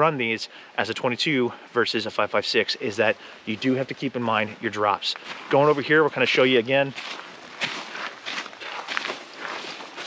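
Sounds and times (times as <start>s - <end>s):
footsteps on gravel and dirt: 4.9s - 10.0s.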